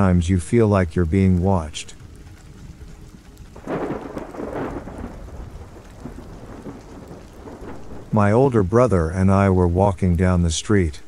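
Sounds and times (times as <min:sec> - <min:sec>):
steady rain: 0:00.0 - 0:11.0
thunder rumbling: 0:00.0 - 0:11.0.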